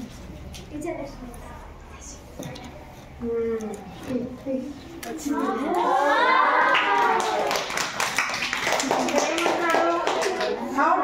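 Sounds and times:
children clapping: 6.6s - 11.0s.

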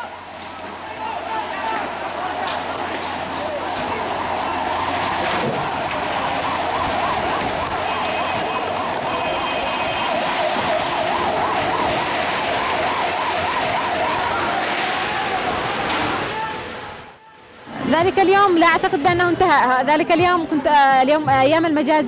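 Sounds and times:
street noise: 0.0s - 22.0s
siren warbling: 3.2s - 15.7s.

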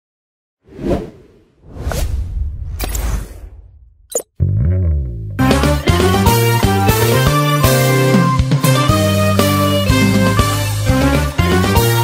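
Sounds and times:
whoosh effects: 0.7s - 4.2s.

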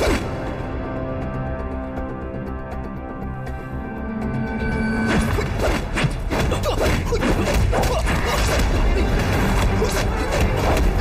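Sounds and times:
action film music with heavy beat: 0.0s - 11.0s.

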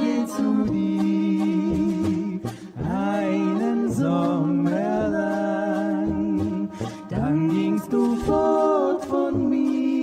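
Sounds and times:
brass band with accordion: 0.0s - 10.0s.

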